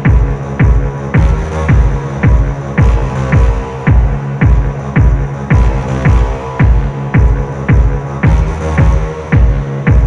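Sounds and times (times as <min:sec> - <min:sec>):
deep bass drone: 0:00.0 - 0:10.0
electronic music: 0:00.0 - 0:10.0
heavy kick drum: 0:00.0 - 0:10.0.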